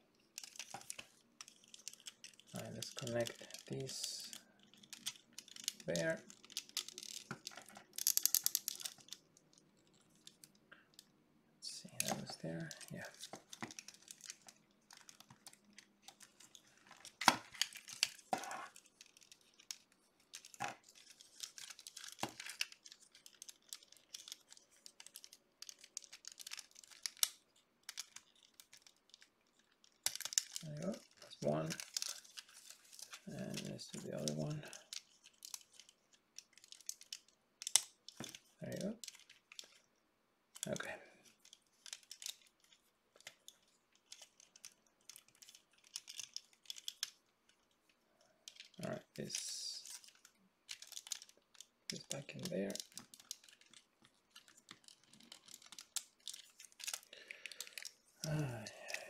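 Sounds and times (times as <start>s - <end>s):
plastic parts clicking and tapping: 0.2s - 11.1s, 11.9s - 39.9s, 40.5s - 59.0s.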